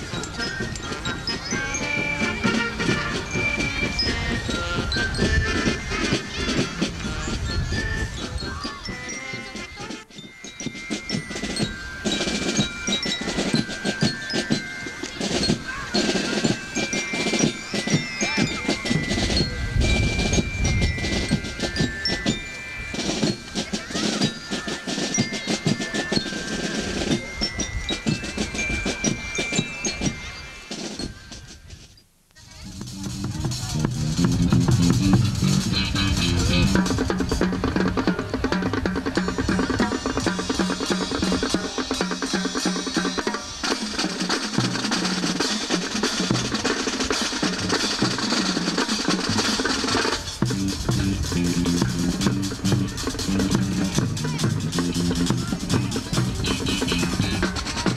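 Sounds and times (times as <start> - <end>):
marching drums beat: 0.0 - 31.7, 32.5 - 57.9
bell lyres playing melody: 0.0 - 31.8, 32.5 - 57.9.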